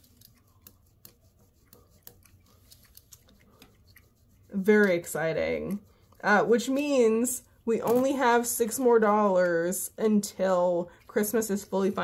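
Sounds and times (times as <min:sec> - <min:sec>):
pencil scratching on paper: 0:00.0 - 0:07.3.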